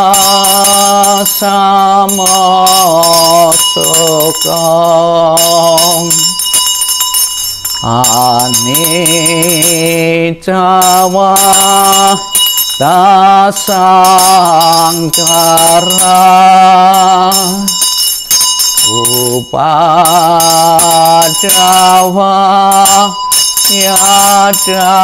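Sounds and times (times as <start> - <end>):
man chanting: 0.0 - 6.4, 7.8 - 17.8, 18.9 - 25.0
small bell ringing: 0.0 - 25.0.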